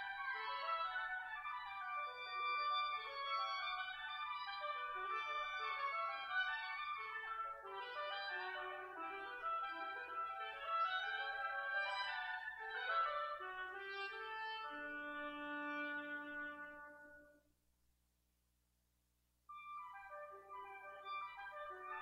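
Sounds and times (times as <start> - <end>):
woodwind duet: 0.0 - 17.5, 19.5 - 22.0.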